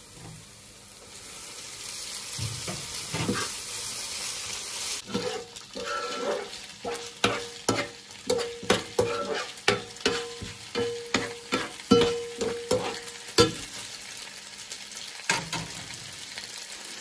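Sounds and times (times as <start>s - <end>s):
food sizzling: 0.0s - 17.0s
metal tongs knocking on pan: 7.2s - 13.7s.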